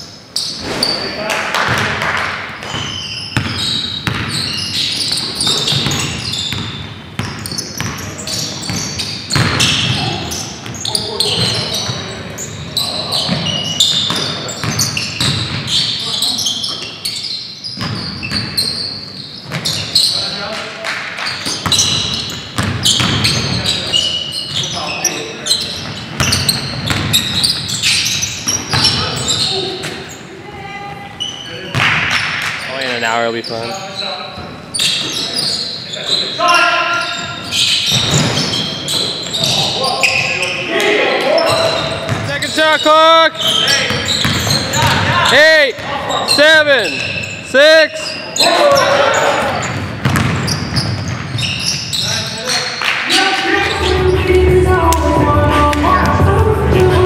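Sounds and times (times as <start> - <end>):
players' indistinct voices: 7.3 - 17.4, 18.3 - 57.0
basketball bouncing on hardwood: 8.7 - 10.1, 22.6 - 23.5, 26.2 - 27.2, 50.0 - 51.4.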